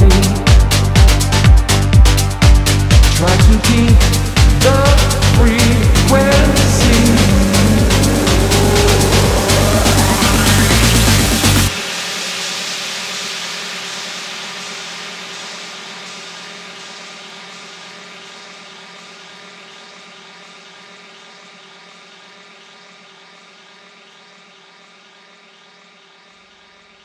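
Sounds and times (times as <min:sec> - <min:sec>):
hissing noise wash: 0:00.0 - 0:19.9
sustained synth chord: 0:04.2 - 0:12.0.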